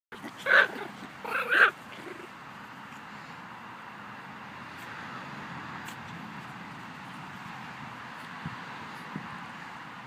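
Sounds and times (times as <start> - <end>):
small dog barking: 0.3 - 1.8.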